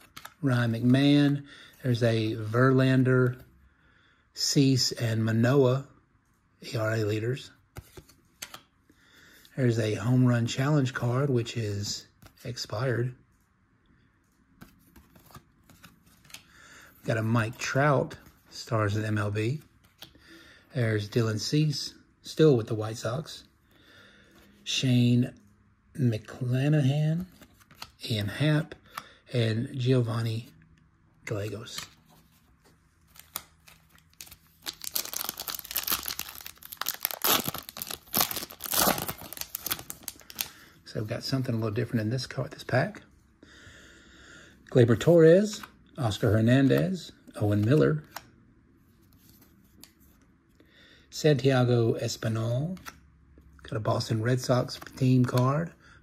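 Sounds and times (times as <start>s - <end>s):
cards clicking and rustling: 0.0s - 1.4s, 7.7s - 8.7s, 14.5s - 16.5s, 27.2s - 28.0s, 31.3s - 40.6s
foil wrapper tearing and crinkling: 34.1s - 40.5s.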